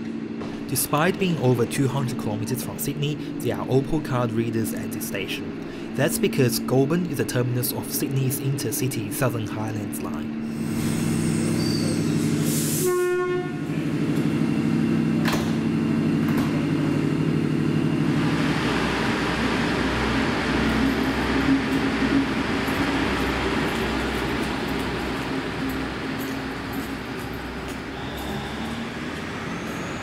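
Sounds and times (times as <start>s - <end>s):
train diesel engine hum: 0.0s - 30.0s
train engine rumble: 0.0s - 30.0s
train horn: 12.8s - 13.8s, 27.8s - 29.2s.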